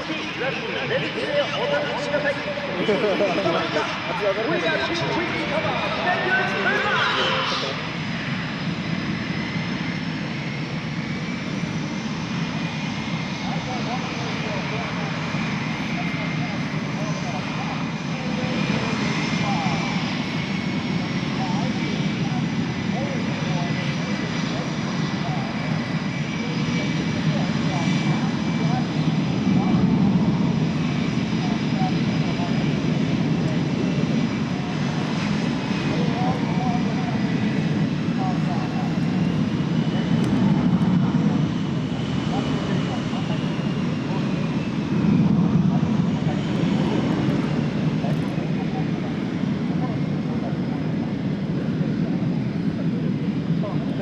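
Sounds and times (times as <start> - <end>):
jet engines taxiing: 0.0 - 54.0.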